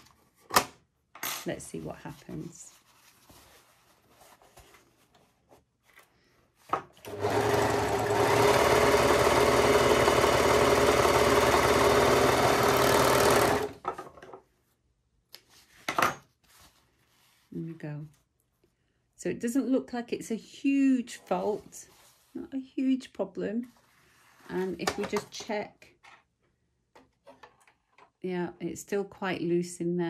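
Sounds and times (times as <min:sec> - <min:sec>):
fabric handling: 0:01.7 - 0:06.7, 0:15.4 - 0:18.6, 0:21.1 - 0:22.6
overlocker stitching: 0:07.0 - 0:13.8.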